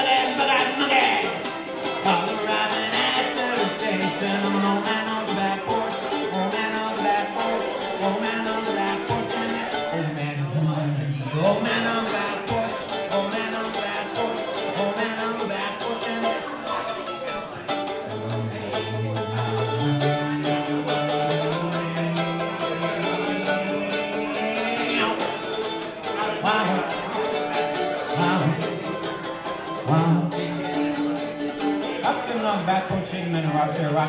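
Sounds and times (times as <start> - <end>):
fast acoustic strumming: 0.0 - 34.0.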